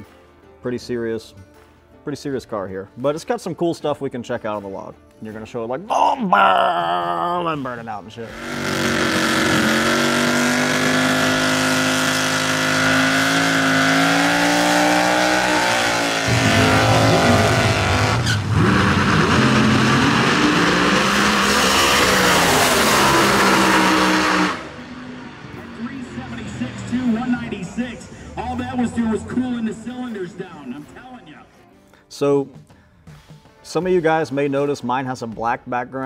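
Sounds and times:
race car engine at high revs: 0:08.3 - 0:27.5.

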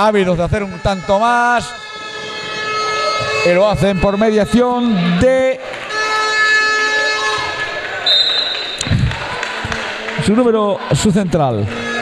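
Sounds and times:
horn-like tone: 0:00.5 - 0:05.3, 0:05.9 - 0:08.8
high shrill tone: 0:00.6 - 0:08.9.

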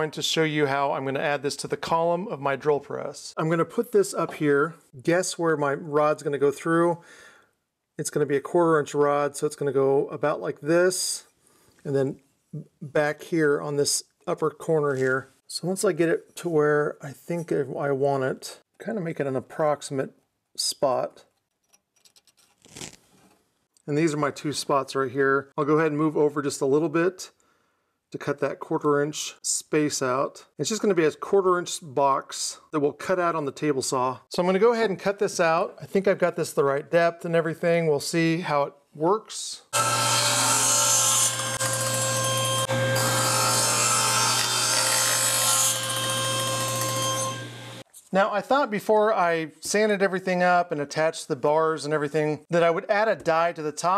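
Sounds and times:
table saw cutting wood: 0:39.8 - 0:47.8.

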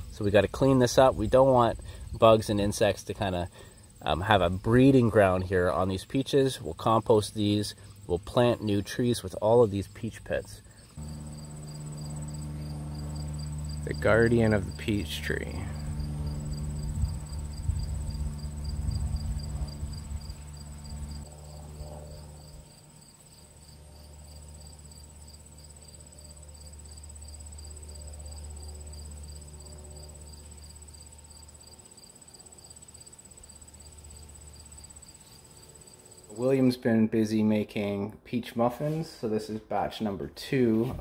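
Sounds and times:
crickets chirring: 0:00.0 - 0:36.5
low rumble: 0:11.0 - 0:22.3.

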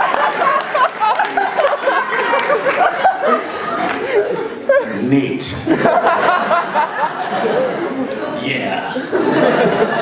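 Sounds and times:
people laughing: 0:00.0 - 0:10.0.

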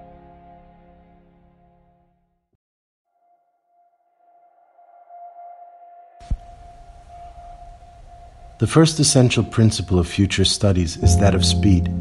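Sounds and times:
ambient background music: 0:04.3 - 0:12.0
steady electronic drone tone: 0:11.0 - 0:12.0.

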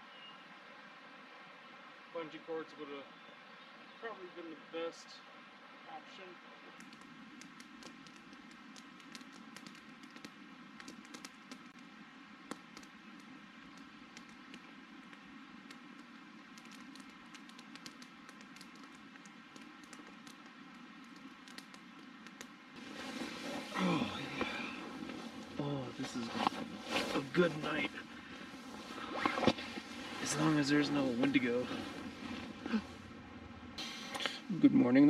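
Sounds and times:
low hiss: 0:00.0 - 0:35.0
campfire crackling and popping: 0:06.8 - 0:33.1
rustling: 0:06.8 - 0:33.1
person speaking low: 0:23.7 - 0:24.8.

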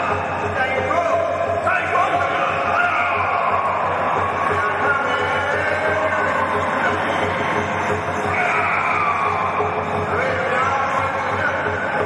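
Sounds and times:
fast steady drumming: 0:00.0 - 0:12.0.

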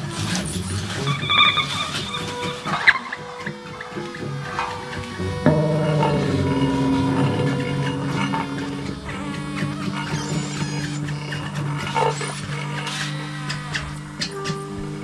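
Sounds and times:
experimental improvised band music: 0:00.0 - 0:15.0.

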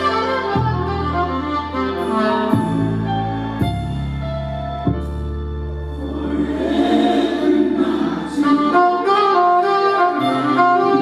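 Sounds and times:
saxophone gospel melody: 0:00.0 - 0:11.0
low sustained accompaniment chord: 0:01.3 - 0:09.1.

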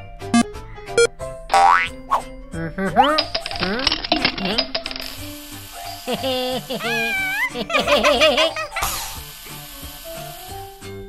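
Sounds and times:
cartoon background music: 0:00.0 - 0:11.0
cartoon character vocal noises: 0:06.2 - 0:09.2.

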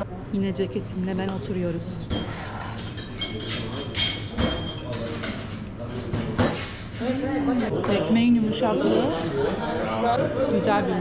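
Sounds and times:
murmur of background chatter: 0:00.0 - 0:11.0
glasses and crockery clinking: 0:02.1 - 0:06.8.

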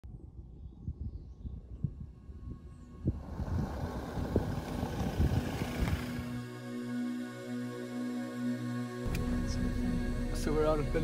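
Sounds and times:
low gusty rumbling: 0:00.1 - 0:06.5.

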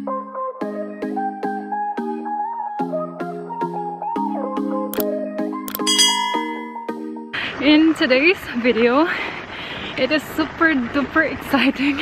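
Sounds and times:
button click: 0:05.7 - 0:06.7
bright ringing ding: 0:05.8 - 0:06.9.

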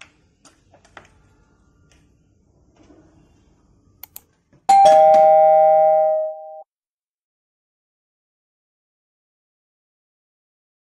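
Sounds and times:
quick clicks: 0:04.0 - 0:04.3
two-note doorbell chime: 0:04.7 - 0:06.7.

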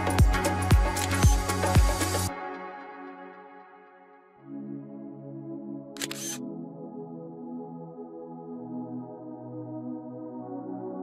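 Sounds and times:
soft ambient synth music: 0:00.0 - 0:11.0
camera shutter click: 0:01.0 - 0:01.3, 0:06.0 - 0:06.4.

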